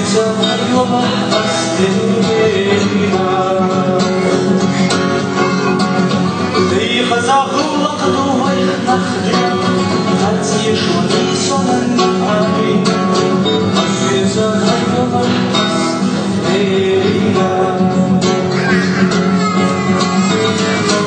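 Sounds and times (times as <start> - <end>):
acoustic guitar playing: 0.0 - 21.0.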